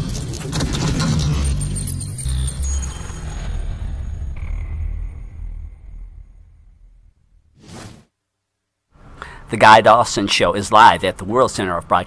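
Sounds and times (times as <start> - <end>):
deep low rumble: 0.3 - 7.6.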